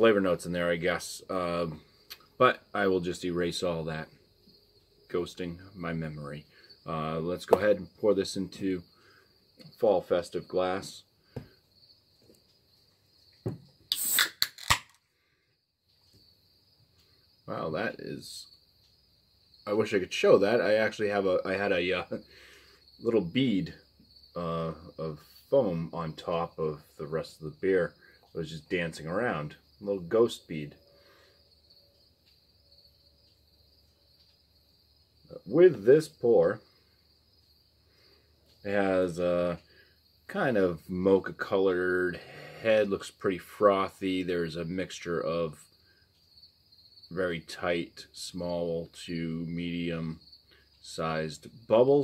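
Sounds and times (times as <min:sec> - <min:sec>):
crickets chirping: 0:00.0 - 0:52.0
hissing burst: 0:13.9 - 0:14.6.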